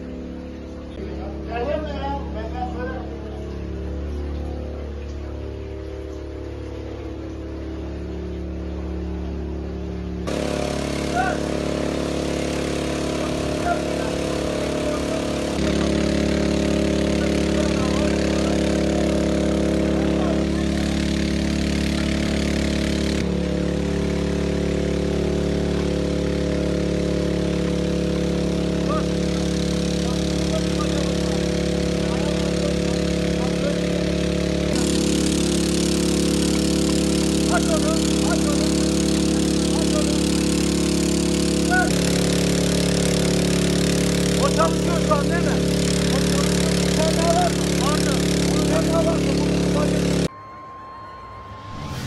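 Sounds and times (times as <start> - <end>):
water pump engine running: 0.0 - 50.3.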